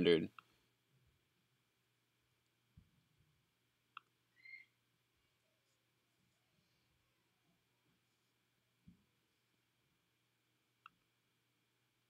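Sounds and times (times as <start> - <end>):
faint short high chirp: 4.4 - 4.8.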